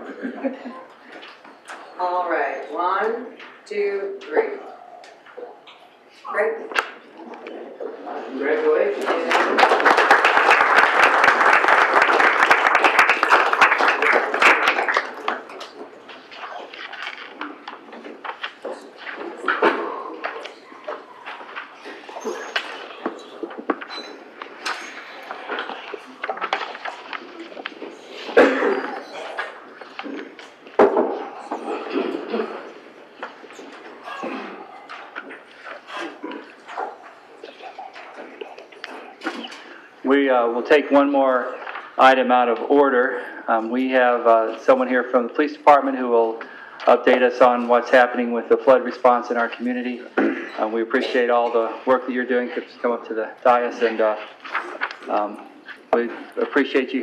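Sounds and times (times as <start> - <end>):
audience applause: 9.0 - 16.1
knocks and thumps of people moving: 12.9 - 40.1
murmur of voices: 13.9 - 40.2.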